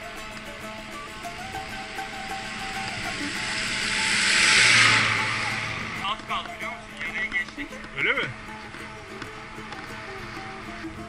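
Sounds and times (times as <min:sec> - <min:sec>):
background music with steady tones: 0:00.0 - 0:11.0
car passing by: 0:00.9 - 0:07.4.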